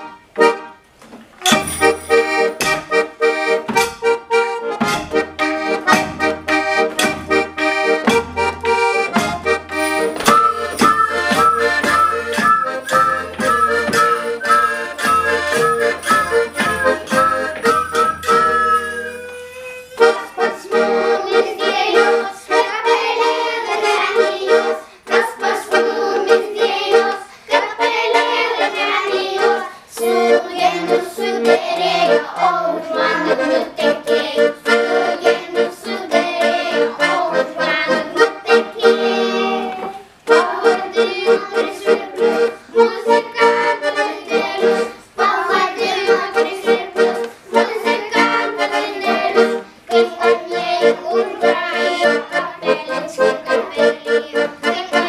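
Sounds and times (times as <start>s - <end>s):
small wind instruments melody: 0.0s - 55.0s
tambourine and wooden percussion: 1.4s - 3.0s, 9.2s - 20.1s.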